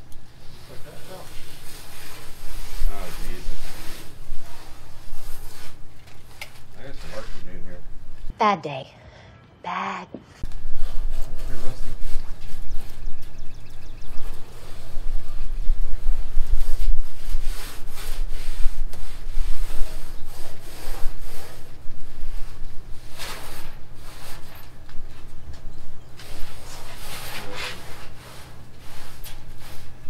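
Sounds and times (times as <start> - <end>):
rubbing and scraping: 0.0 - 8.3, 10.4 - 30.0
steady low hum: 0.0 - 30.0.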